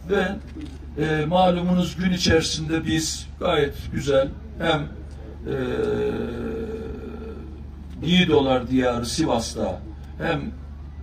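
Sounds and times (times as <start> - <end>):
man holding a hesitation vowel: 4.3 - 7.7.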